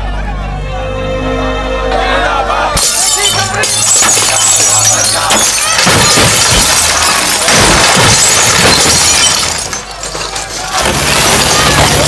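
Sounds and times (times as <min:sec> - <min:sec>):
music: 0:00.0 - 0:06.4
glass bottles smashing: 0:02.8 - 0:12.0.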